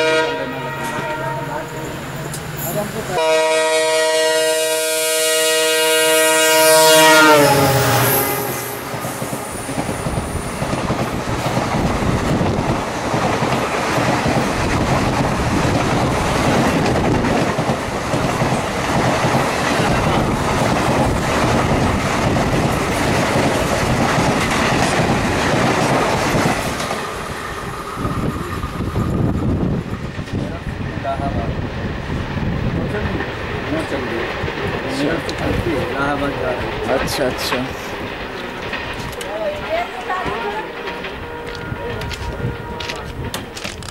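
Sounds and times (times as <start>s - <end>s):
locomotive horn: 0.0s - 2.2s, 3.1s - 9.6s, 39.6s - 43.8s
train coaches rushing past: 0.0s - 43.9s
wheel clatter: 42.0s - 43.9s.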